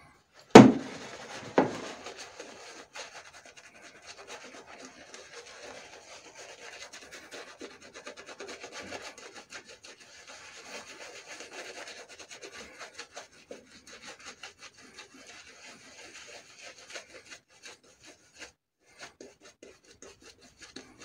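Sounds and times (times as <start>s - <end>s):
shaving brush rubbing on stubble: 0.6s - 21.0s.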